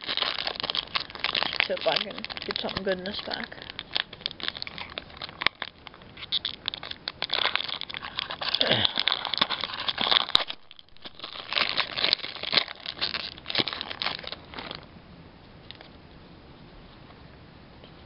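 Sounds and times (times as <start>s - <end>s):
foil wrapper crinkling: 0.0s - 14.9s.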